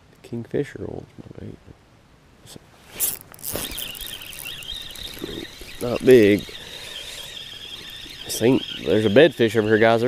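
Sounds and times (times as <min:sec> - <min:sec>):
fish splashing: 0:02.9 - 0:10.0
fishing reel whining: 0:03.0 - 0:10.0.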